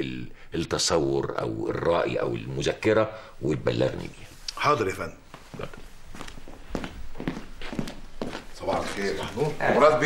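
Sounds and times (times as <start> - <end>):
footsteps on office floor: 5.3 - 9.6.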